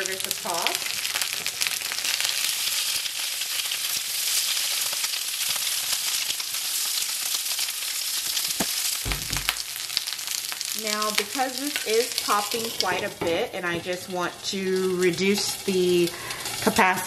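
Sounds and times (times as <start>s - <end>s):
vegetables sizzling in hot oil: 0.0s - 17.0s
short low thump: 9.0s - 9.6s
spatula turning food in skillet: 9.9s - 17.0s.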